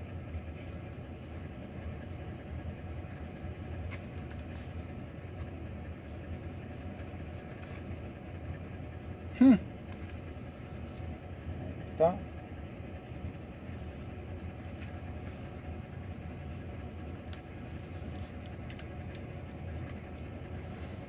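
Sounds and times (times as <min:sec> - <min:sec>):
truck engine idling: 0:00.0 - 0:21.0
person humming hm: 0:09.3 - 0:09.7.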